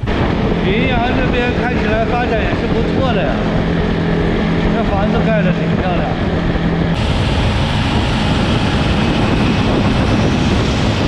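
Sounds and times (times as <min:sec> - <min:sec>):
road noise: 0:00.0 - 0:11.0
wind rushing: 0:00.0 - 0:11.0.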